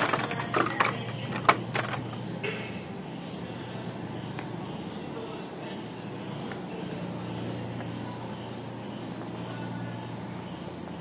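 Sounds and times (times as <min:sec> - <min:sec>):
low steady hum: 0:00.0 - 0:11.0
noisy store ambience: 0:00.0 - 0:11.0.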